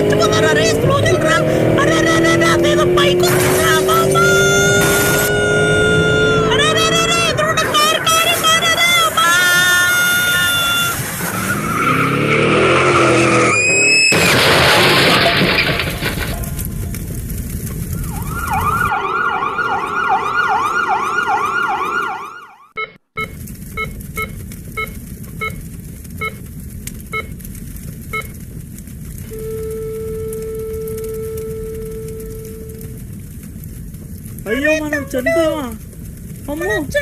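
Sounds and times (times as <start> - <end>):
emergency siren wailing: 0.0 - 14.2, 17.9 - 22.8, 29.3 - 33.1
short electronic beeps: 28.1 - 28.3, 29.4 - 32.8
long steady tone: 29.3 - 33.0.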